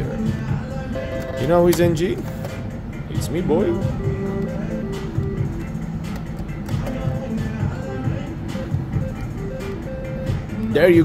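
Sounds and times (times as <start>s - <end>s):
electronic slot machine tune: 0.0s - 11.0s.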